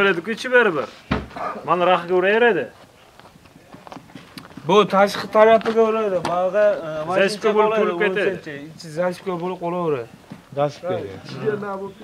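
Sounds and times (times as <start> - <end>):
men talking: 0.0 - 2.8, 4.6 - 12.0.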